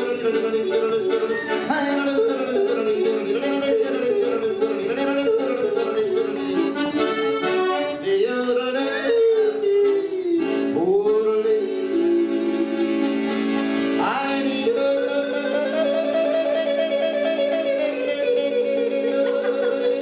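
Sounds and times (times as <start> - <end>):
man yodeling into a microphone: 0.0 - 6.8, 7.9 - 13.3, 13.9 - 20.0
accordion chords: 0.0 - 20.0.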